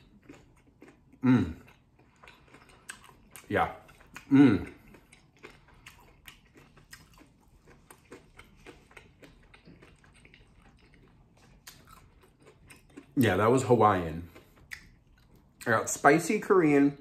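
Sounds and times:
person chewing: 0.0 - 16.0.

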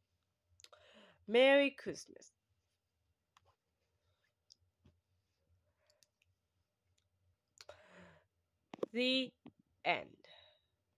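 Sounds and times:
short breath: 0.7 - 1.2, 7.7 - 8.2.

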